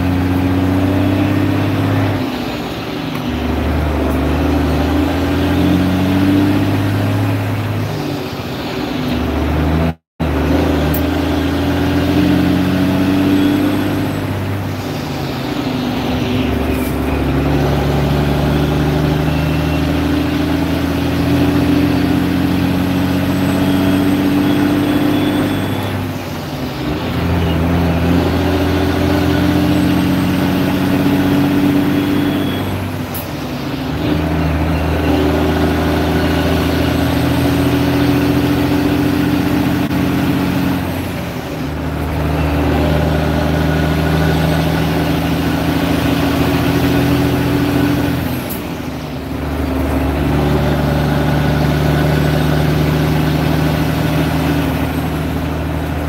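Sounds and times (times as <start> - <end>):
truck diesel engine under load: 0.0 - 56.0.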